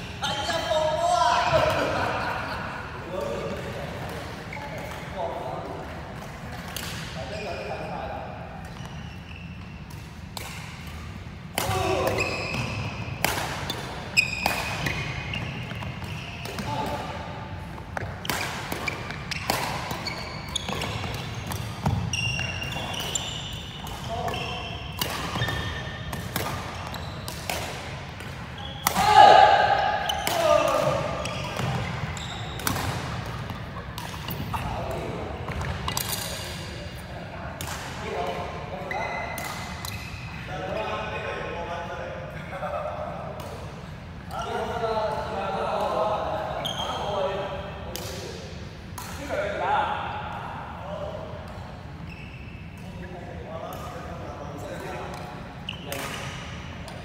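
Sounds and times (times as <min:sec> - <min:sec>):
players' voices: 0:00.0 - 0:08.7, 0:11.5 - 0:51.8
shoes squeaking on wooden court: 0:02.4 - 0:05.2, 0:06.2 - 0:10.2, 0:11.7 - 0:17.1, 0:17.7 - 0:37.3, 0:38.0 - 0:41.5, 0:45.8 - 0:47.4, 0:51.4 - 0:57.0
rackets hitting shuttlecock: 0:09.8 - 0:36.7, 0:54.7 - 0:57.0.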